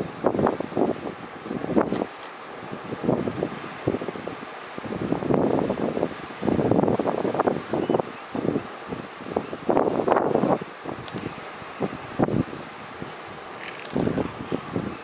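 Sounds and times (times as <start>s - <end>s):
wind on microphone: 0.0s - 15.0s.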